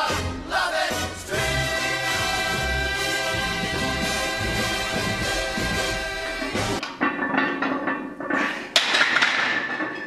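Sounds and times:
barbell and weight plates clanking: 6.4s - 10.0s.

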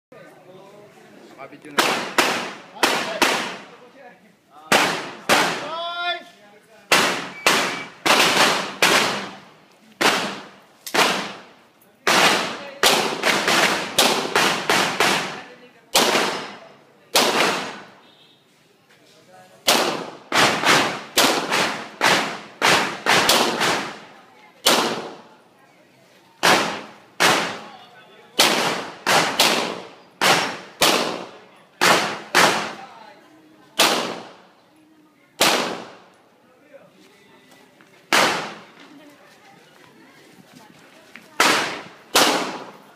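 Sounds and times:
pistol shots echoing: 6.9s - 9.4s, 12.1s - 15.4s, 16.0s - 17.9s, 28.4s - 32.8s, 33.8s - 34.4s, 35.4s - 36.0s, 41.4s - 42.8s.

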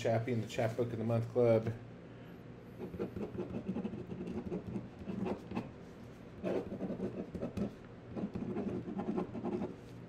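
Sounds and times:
pen writing on paper: 2.9s - 5.7s, 6.4s - 9.7s.

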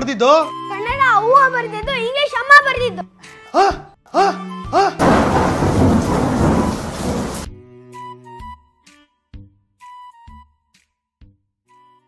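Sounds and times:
thunder crash rolling: 5.0s - 7.5s.

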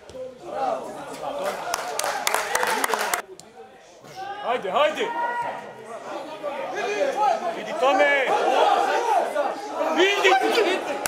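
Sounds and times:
men shouting: 6.7s - 11.0s.

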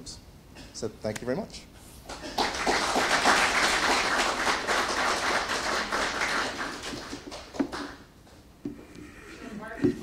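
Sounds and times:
audience applauding: 2.3s - 8.1s.

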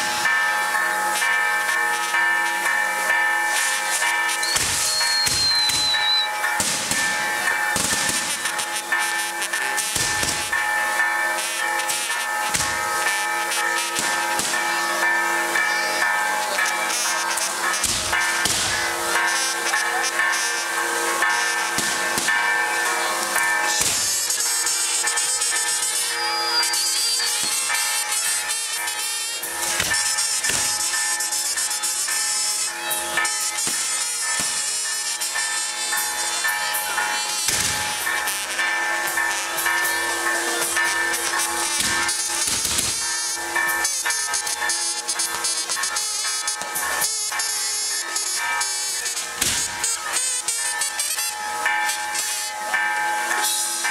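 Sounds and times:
fireworks hissing and crackling: 0.0s - 53.9s
sharp firework bangs: 4.4s - 8.6s, 9.9s - 10.6s, 12.5s - 13.0s, 14.0s - 14.7s, 17.8s - 18.9s, 21.8s - 22.5s, 23.7s - 24.4s, 29.8s - 31.0s, 33.6s - 35.0s, 37.5s - 38.2s, 41.7s - 43.3s, 49.4s - 49.9s.

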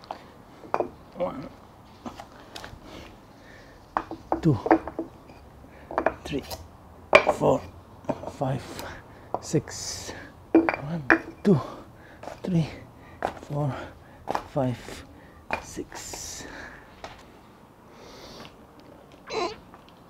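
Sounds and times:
wood knocking on concrete floor: 4.0s - 5.1s.

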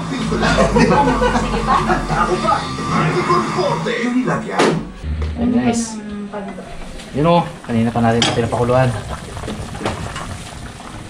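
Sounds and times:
soup boiling in a pot: 7.0s - 11.0s.

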